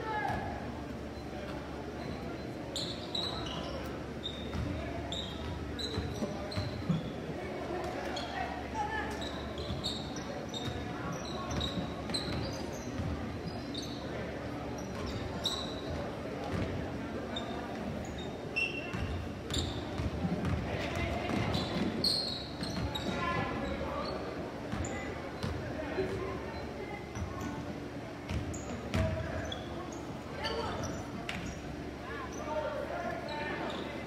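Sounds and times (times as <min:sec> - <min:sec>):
murmur of spectators: 0:00.0 - 0:34.0
sneakers squeaking on court: 0:01.0 - 0:08.4, 0:09.0 - 0:32.5, 0:33.2 - 0:34.0.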